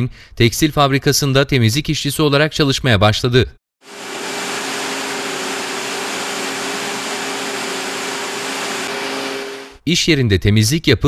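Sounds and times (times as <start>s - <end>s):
knitting machines whirring: 3.8s - 9.8s.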